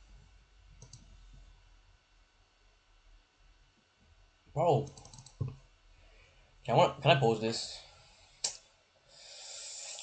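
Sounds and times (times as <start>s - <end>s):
computer mouse clicks: 0.8s - 1.1s, 4.8s - 5.6s.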